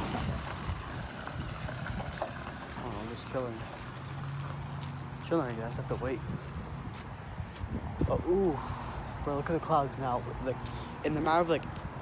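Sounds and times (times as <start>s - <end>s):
wind buffeting microphone: 0.0s - 4.1s, 5.6s - 12.0s.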